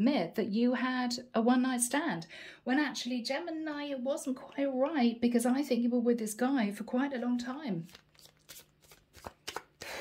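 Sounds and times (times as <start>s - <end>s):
cards rustling: 7.8s - 10.0s
cards snapping and tapping: 7.9s - 9.9s.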